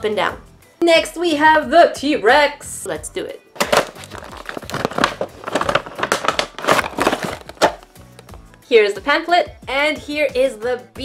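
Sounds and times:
plastic packaging crinkling: 3.6 - 8.0.

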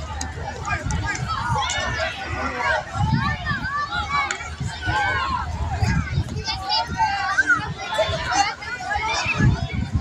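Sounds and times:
children's voices: 0.0 - 10.0
people chattering: 0.0 - 10.0.

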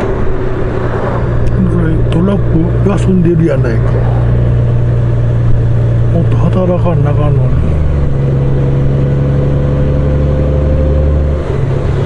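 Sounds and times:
motorcycle engine cruising: 0.0 - 12.0
road noise: 0.0 - 12.0.

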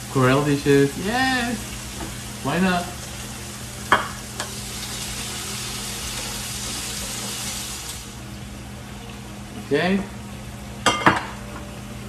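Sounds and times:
chicken sizzling in a skillet: 0.0 - 8.4.

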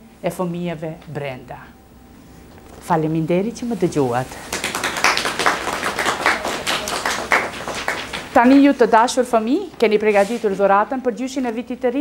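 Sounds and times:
people applauding: 4.4 - 8.6.

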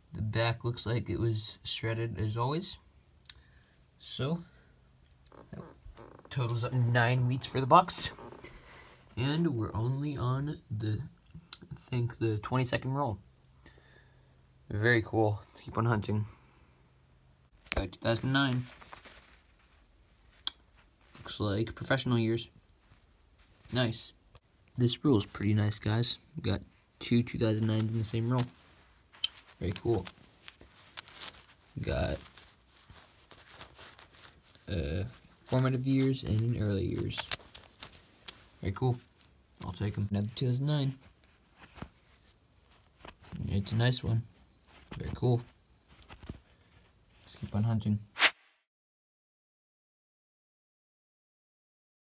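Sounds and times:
coins clicking on cloth: 29.2 - 31.5, 37.0 - 38.5.

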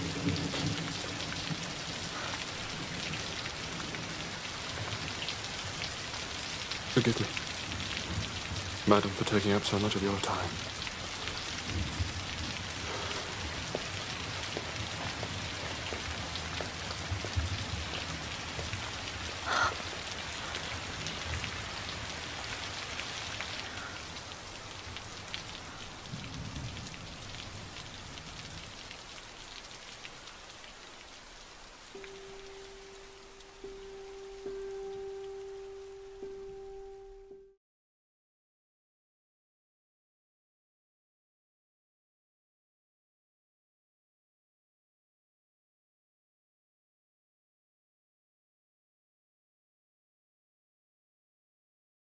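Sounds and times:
heavy rain falling: 0.0 - 36.8
steady held note: 32.0 - 37.6.

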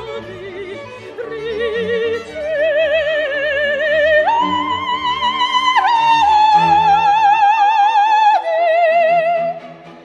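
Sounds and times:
soprano singing with vibrato: 0.0 - 9.6
orchestra: 0.0 - 10.0.

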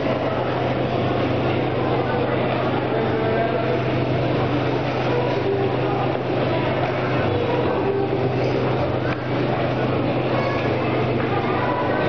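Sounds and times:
low machine hum: 0.0 - 12.0
murmur of voices: 0.0 - 12.0.

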